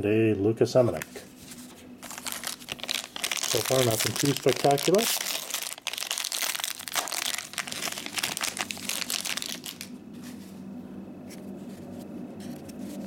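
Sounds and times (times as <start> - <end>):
wrapper rustling: 1.4 - 10.4
foil wrapper crackling: 2.0 - 9.9.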